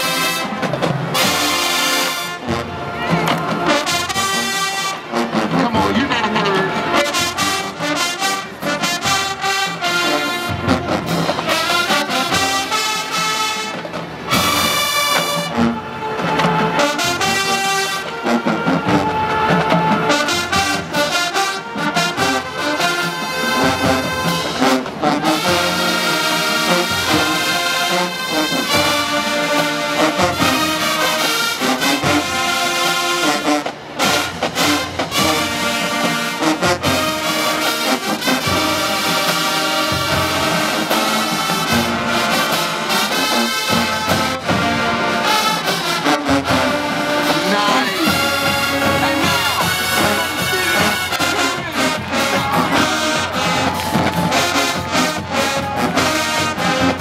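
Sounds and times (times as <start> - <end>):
marching band brass playing: 0.0 - 57.0.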